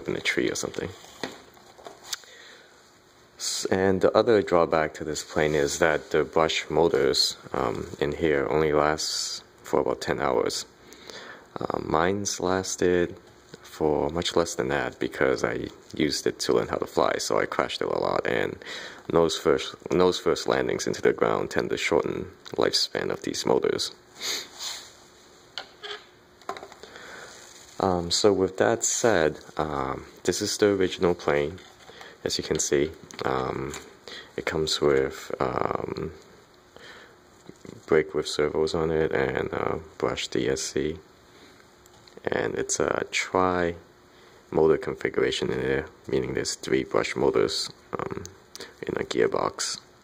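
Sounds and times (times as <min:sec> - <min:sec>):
soft rubbing: 0:00.2 - 0:02.1, 0:05.0 - 0:06.8, 0:24.1 - 0:26.1, 0:27.0 - 0:35.0.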